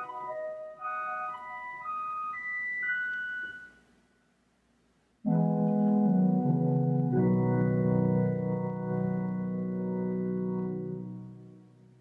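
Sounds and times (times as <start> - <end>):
church organ slow melody: 5.3 - 12.0.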